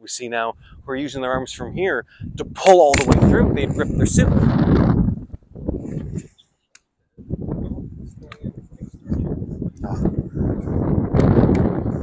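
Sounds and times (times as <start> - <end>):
wind rumbling on microphone: 0.5 - 6.4, 7.2 - 12.0.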